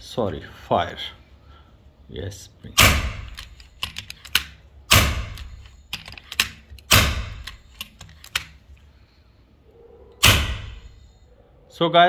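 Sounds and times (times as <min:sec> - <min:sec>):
air rifle shots: 0:02.8 - 0:03.4, 0:04.4 - 0:05.6, 0:06.9 - 0:07.6, 0:10.2 - 0:10.9
mechanical clicks: 0:02.8 - 0:08.6.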